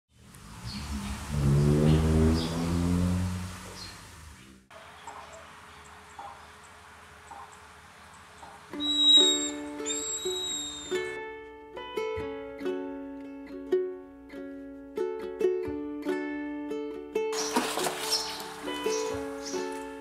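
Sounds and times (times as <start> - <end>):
loud low drone with hiss: 0.2 - 4.7
faint bird chirps: 3.7 - 11.1
ukulele music: 8.7 - 20.0.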